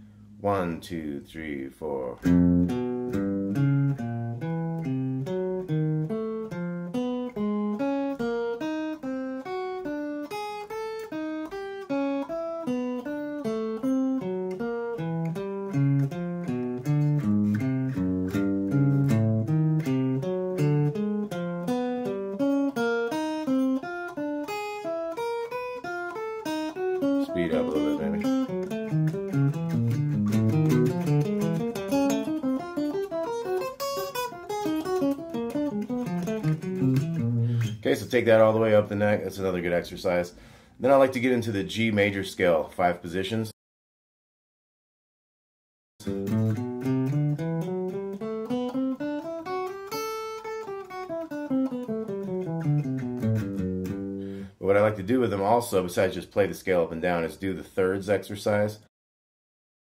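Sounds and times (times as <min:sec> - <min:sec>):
electric guitar picking single notes: 0:00.4 - 0:40.6, 0:46.0 - 0:54.5.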